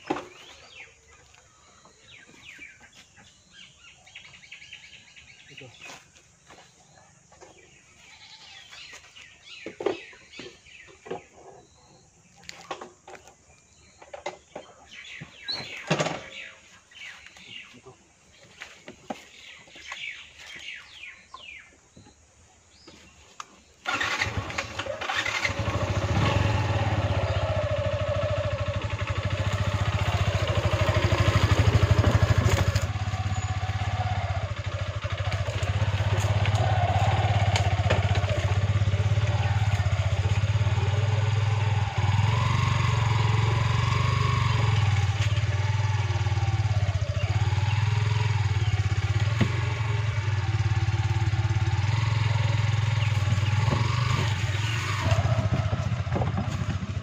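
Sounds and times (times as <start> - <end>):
motorcycle engine running: 23.9 - 57.0.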